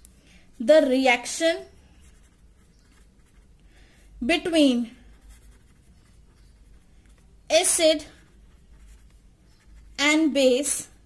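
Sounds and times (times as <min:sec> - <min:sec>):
pen scratching on paper: 0:02.0 - 0:03.5, 0:05.0 - 0:10.1.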